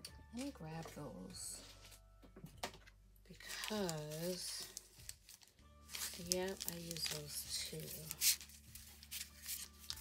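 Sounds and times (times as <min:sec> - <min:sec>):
paper and plastic rustling: 0:02.6 - 0:10.0.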